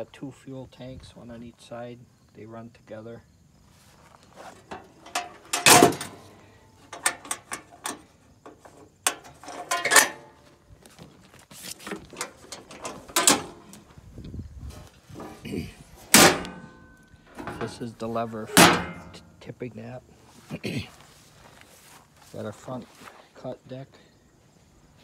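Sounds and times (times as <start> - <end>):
metal clicks and clanks: 4.6 - 10.4, 11.9 - 13.8, 16.1 - 19.3.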